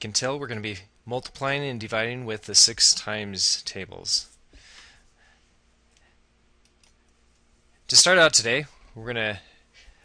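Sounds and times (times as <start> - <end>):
man speaking: 0.0 - 4.4, 7.9 - 9.6
computer mouse clicks: 5.9 - 7.4.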